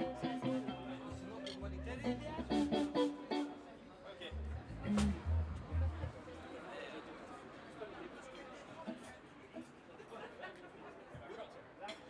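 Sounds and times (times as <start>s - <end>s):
electric bass notes: 0.0s - 3.5s, 4.4s - 6.0s
electric guitar notes: 0.0s - 3.6s.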